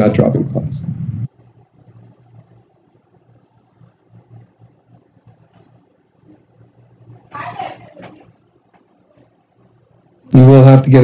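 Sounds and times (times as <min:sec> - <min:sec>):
faint wavering low hum: 0:00.0 - 0:10.6.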